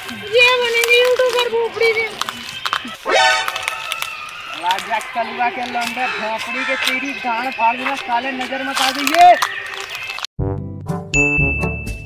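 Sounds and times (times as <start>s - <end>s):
chiming notes run: 11.2s - 12.0s
held high ding: 11.2s - 12.0s.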